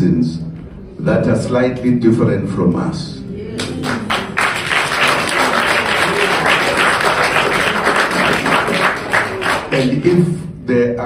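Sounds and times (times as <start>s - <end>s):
audience applauding: 3.6s - 10.1s.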